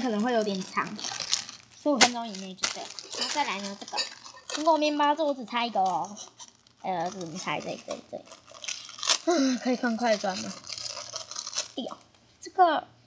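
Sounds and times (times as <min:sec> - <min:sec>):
woman talking: 0:00.0 - 0:01.2, 0:01.8 - 0:04.0, 0:06.8 - 0:08.3, 0:09.3 - 0:10.6
plastic bags crinkling: 0:00.0 - 0:12.2.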